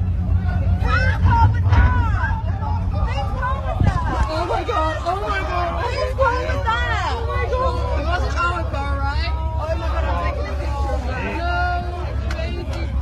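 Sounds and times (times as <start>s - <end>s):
low rumble: 0.0s - 13.0s
people talking and exclaiming: 0.0s - 13.0s.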